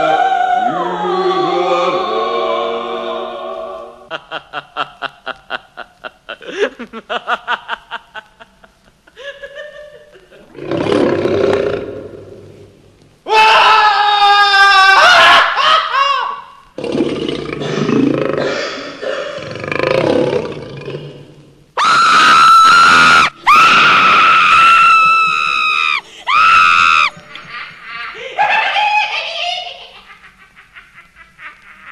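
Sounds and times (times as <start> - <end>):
woman laughing: 4.1 - 10.5, 27.1 - 31.9.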